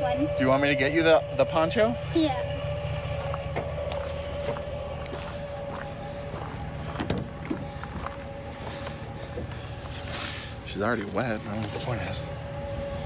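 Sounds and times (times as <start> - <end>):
pickup truck engine idling: 0.0 - 13.0.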